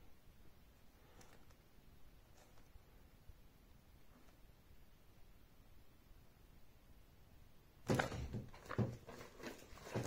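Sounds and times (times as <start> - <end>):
plastic sleeve rustling and crinkling: 7.9 - 10.0.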